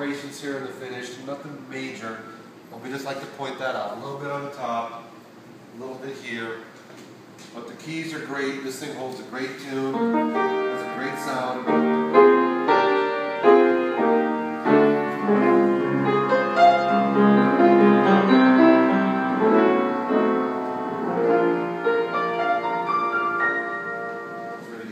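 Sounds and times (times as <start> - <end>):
piano chords and melody: 9.8 - 24.9.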